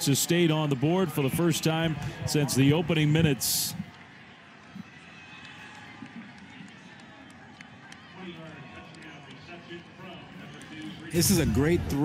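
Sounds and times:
sports commentary: 0:00.0 - 0:04.0, 0:07.7 - 0:12.0
stadium crowd ambience: 0:00.0 - 0:12.0.

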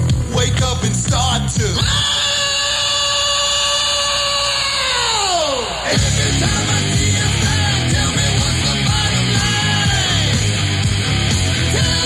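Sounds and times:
rock music: 0:00.0 - 0:12.0.

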